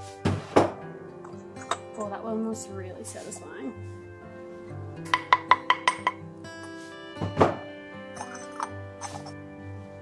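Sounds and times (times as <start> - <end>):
ceramic clinking: 1.2 - 2.1, 5.1 - 6.7, 8.1 - 9.4
ceramic lid scraping: 8.2 - 9.4.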